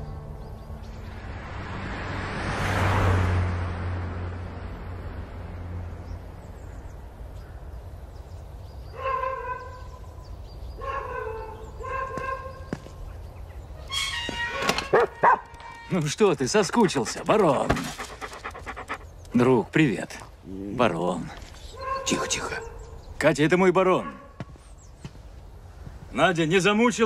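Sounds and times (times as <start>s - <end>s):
car driving past: 0.5s - 6.6s
dog panting: 16.8s - 19.4s.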